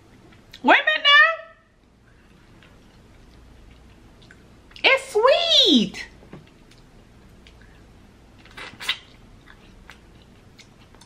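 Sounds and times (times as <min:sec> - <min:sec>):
wet chewing mouth clicks: 0:02.5 - 0:04.8, 0:08.4 - 0:11.0.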